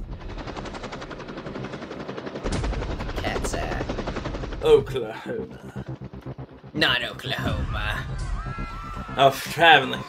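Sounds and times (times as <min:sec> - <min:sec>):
helicopter rotor chopping: 0:00.0 - 0:10.0.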